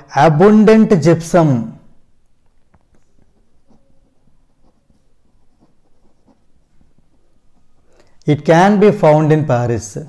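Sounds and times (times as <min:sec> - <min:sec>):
pen scratching on paper: 0:03.0 - 0:07.8.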